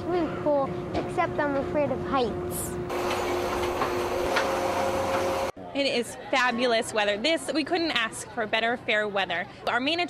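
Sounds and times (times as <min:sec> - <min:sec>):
fairground ride machinery running: 0:02.8 - 0:05.5.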